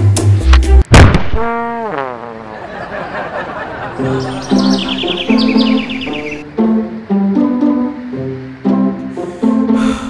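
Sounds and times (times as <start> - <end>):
background music: 3.8 - 10.0
cartoon birds tweeting: 4.0 - 6.4.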